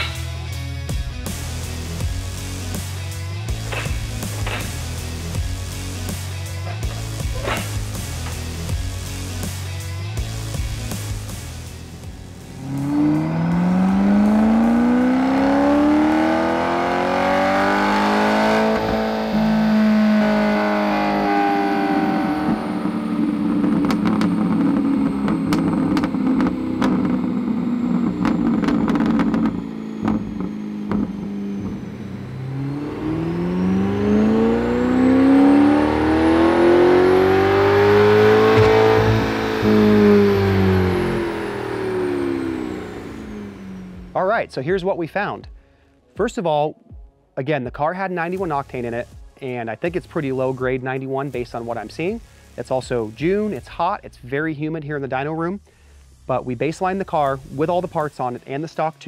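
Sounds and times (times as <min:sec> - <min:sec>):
car engine revving on dyno: 0:01.3 - 0:44.2.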